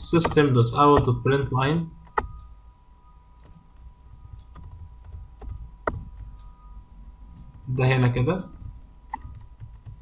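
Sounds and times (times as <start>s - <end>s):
faint steady high whine: 0.0s - 10.0s
computer keyboard keystrokes: 8.6s - 10.0s.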